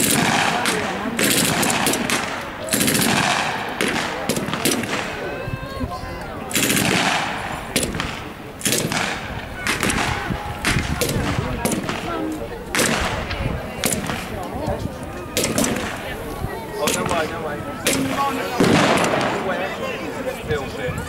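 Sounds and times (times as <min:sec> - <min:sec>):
automatic gunfire bursts: 0:00.0 - 0:05.1, 0:06.5 - 0:12.1
single gunshots: 0:00.0 - 0:05.2, 0:06.5 - 0:14.3, 0:15.4 - 0:16.0, 0:16.8 - 0:19.6.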